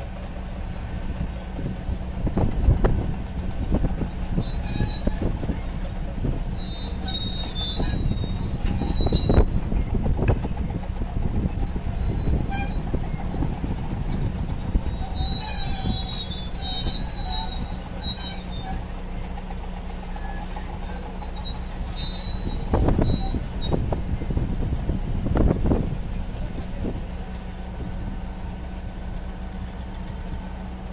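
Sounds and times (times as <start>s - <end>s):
steel tracks squealing: 0.0s - 25.0s
bulldozer diesel engine running: 0.0s - 30.9s.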